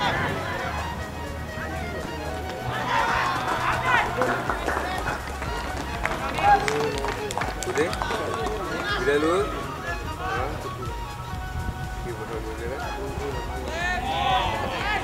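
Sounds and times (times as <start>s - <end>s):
players calling and shouting: 0.0s - 15.0s.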